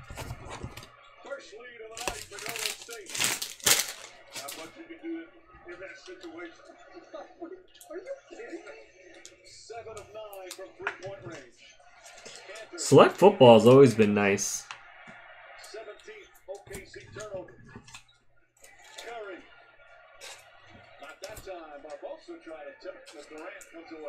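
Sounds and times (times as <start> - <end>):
faint murmur of speech: 0.0 - 12.9
foil card packs crinkling: 1.9 - 4.7.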